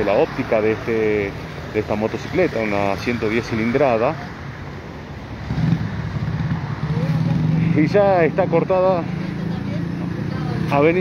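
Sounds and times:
passing vehicle engine: 0.0s - 11.0s
street traffic noise: 0.0s - 11.0s.

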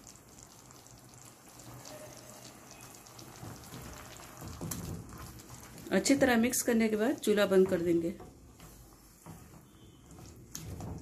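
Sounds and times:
sauce sizzling in a pan: 0.0s - 11.0s
spatula knocking in pan: 7.4s - 11.0s.

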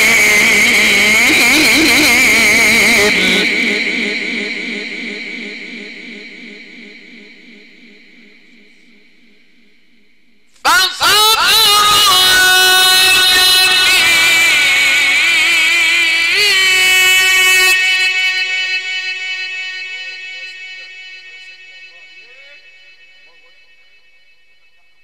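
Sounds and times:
man reciting with vibrato: 0.0s - 9.5s, 10.5s - 25.0s.

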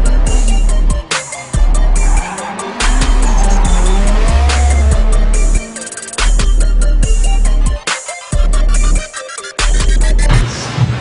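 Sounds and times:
hip-hop music with heavy bass: 0.0s - 10.4s
car engine revving: 0.0s - 11.0s
tyres squealing: 0.1s - 7.7s.

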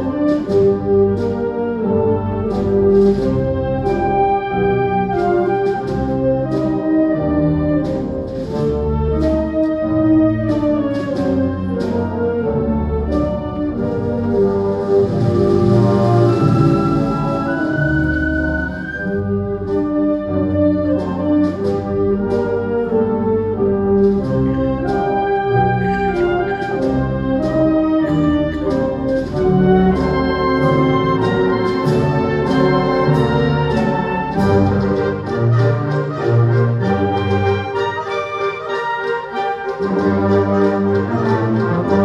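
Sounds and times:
wind band playing a march: 0.0s - 42.0s.

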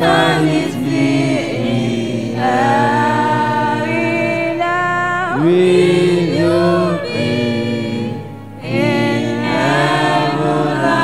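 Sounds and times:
choir singing gospel: 0.0s - 11.0s
electronic keyboard: 0.0s - 11.0s.

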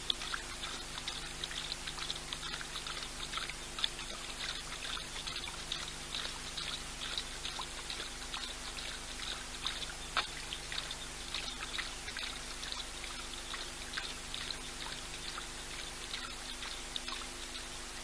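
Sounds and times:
lion lapping water: 0.0s - 18.0s.

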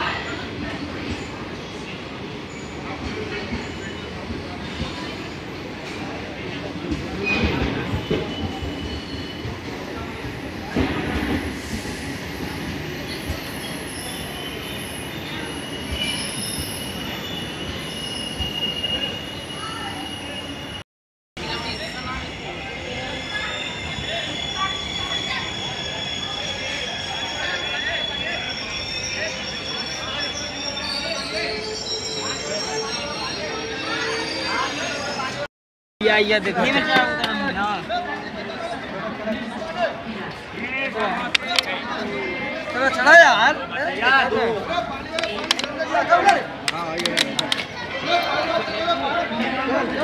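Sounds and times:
train wheel squeal: 6.9s - 20.8s, 21.4s - 35.5s
voices on platform: 21.4s - 50.0s.

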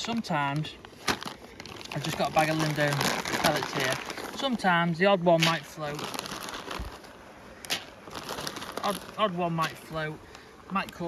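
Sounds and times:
plastic bag rustling: 0.0s - 10.4s.

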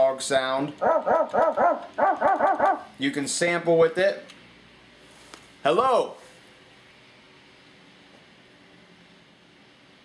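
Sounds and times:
keyboard dog bark samples: 0.8s - 2.9s.

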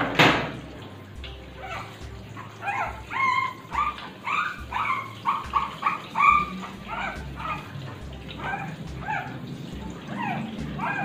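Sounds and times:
puppy crying: 1.4s - 11.0s.

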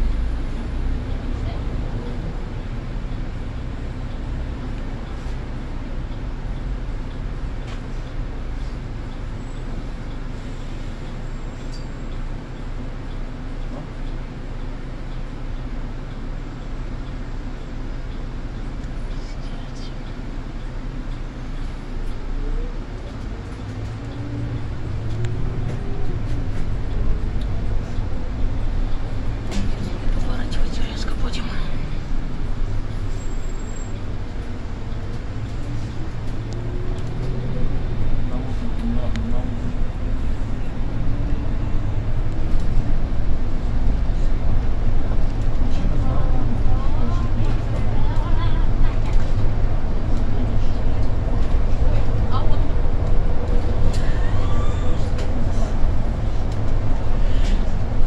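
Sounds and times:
bus engine drone: 0.0s - 58.0s.

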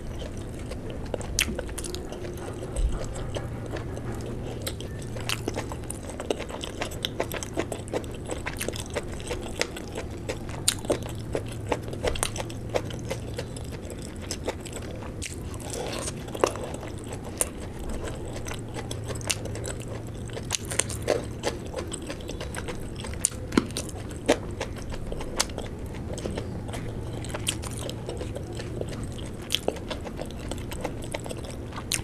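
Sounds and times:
chewing with mouth clicks: 0.0s - 32.0s.

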